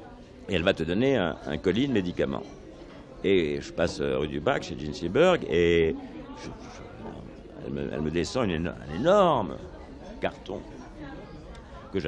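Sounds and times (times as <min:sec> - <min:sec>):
low background noise: 0:00.0 - 0:12.0
faint voice sounds: 0:05.7 - 0:07.8.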